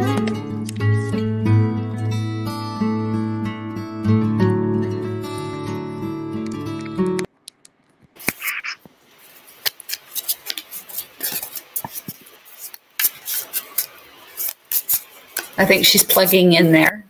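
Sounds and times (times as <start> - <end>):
acoustic guitar music: 0.0 - 7.3
device handling clicks and rustles: 9.3 - 15.6.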